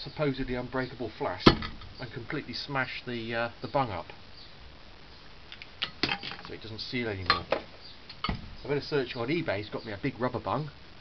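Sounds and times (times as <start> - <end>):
faint clicks: 5.5 - 6.6.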